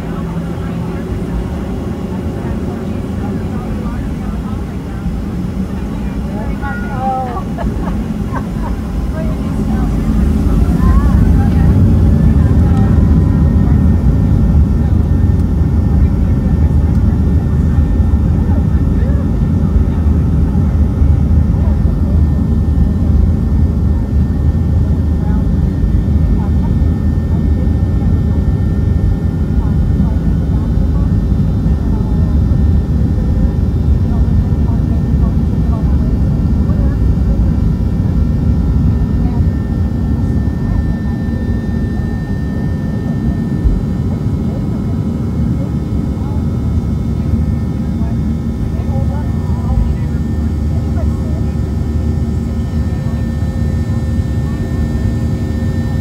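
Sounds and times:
jet engine whine: 0:00.0 - 0:56.0
jet engines roaring in cabin: 0:00.0 - 0:56.0.

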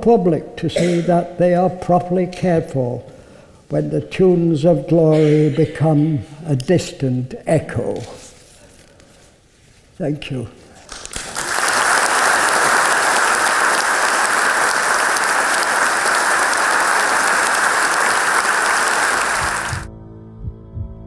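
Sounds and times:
audience applauding: 0:10.9 - 0:19.9
soft ambient music: 0:19.9 - 0:21.0.

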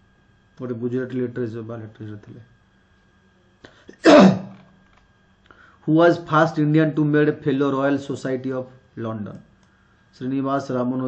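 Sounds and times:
man speaking: 0:00.6 - 0:02.5, 0:05.8 - 0:09.5, 0:10.2 - 0:11.0
man clearing his throat: 0:03.9 - 0:04.6.

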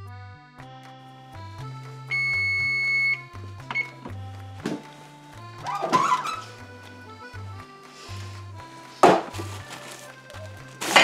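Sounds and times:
background music: 0:00.0 - 0:11.0
kitchen timer beep: 0:02.1 - 0:04.0.

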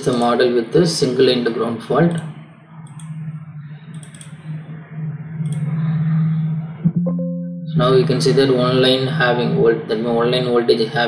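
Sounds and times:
steady low hum: 0:00.0 - 0:11.0
computer mouse clicks: 0:02.1 - 0:03.2, 0:03.9 - 0:04.5, 0:05.4 - 0:05.7.

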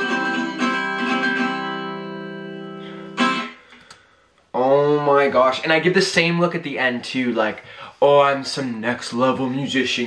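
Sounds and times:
acoustic guitar strumming: 0:00.0 - 0:03.9.

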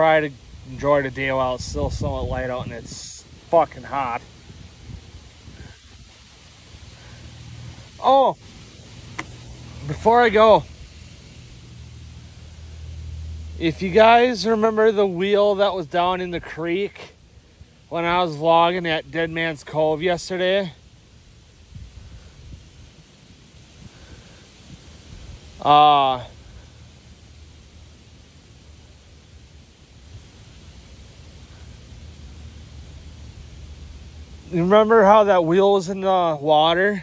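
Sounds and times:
leaves rustling: 0:00.0 - 0:37.0
wind rumble on microphone: 0:00.3 - 0:13.1, 0:21.0 - 0:25.7.

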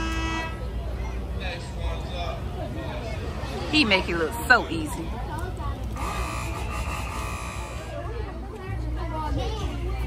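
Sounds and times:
faint background chatter: 0:00.0 - 0:10.0
steady high buzz: 0:06.0 - 0:08.2.

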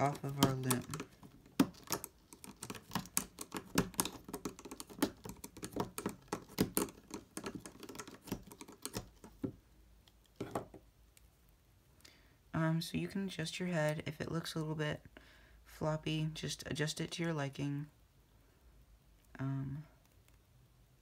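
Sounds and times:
plastic hook clicking on pegs: 0:00.0 - 0:10.7.

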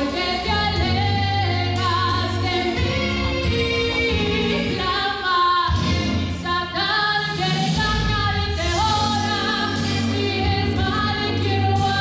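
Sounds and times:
instrumental accompaniment with bass: 0:00.0 - 0:12.0
woman singing gospel song: 0:00.0 - 0:12.0.

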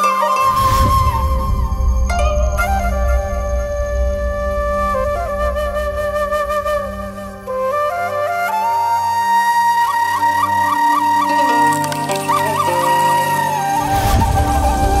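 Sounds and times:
bamboo flute melody with trills: 0:00.0 - 0:15.0
low instrumental accompaniment: 0:00.0 - 0:15.0.

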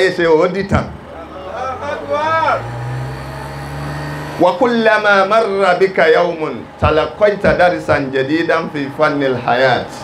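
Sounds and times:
low engine-like hum rising in pitch: 0:00.9 - 0:10.0
man's voice: 0:04.4 - 0:10.0.

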